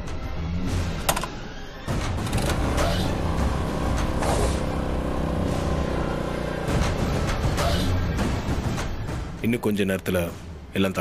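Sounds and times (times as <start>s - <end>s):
background music: 0.0s - 11.0s
motor scooter engine running: 2.2s - 7.3s.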